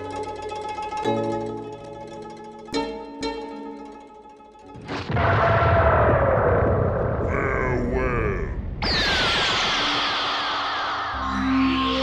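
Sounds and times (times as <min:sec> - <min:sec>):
sudden hit: 0:04.8 - 0:07.3
voice-like sounds: 0:07.2 - 0:08.8
falling-pitch effects: 0:08.8 - 0:12.0.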